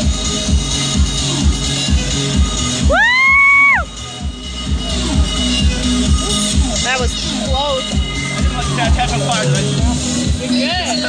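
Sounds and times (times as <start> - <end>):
electronic dance music: 0.0 - 11.0
person whooping: 2.8 - 3.9.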